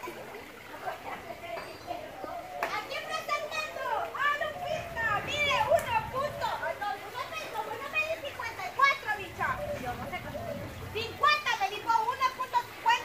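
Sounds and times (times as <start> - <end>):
people chattering and calling out: 0.0 - 13.0.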